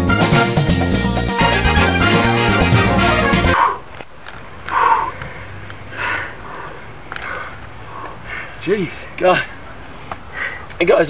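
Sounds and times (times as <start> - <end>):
men breathing hard: 4.6 - 8.6, 10.2 - 10.7.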